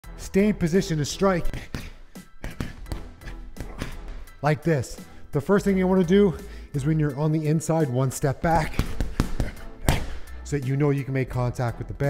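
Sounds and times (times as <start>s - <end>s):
background music: 0.0s - 12.0s
boxing gloves hitting punching bag: 1.4s - 4.3s, 8.4s - 10.3s.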